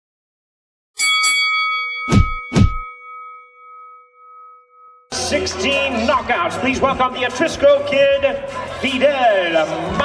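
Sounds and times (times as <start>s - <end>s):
bright bell-like ding: 1.0s - 5.1s.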